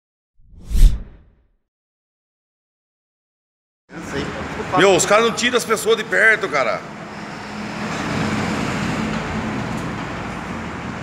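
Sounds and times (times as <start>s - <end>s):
whoosh with low boom: 0.4s - 1.4s.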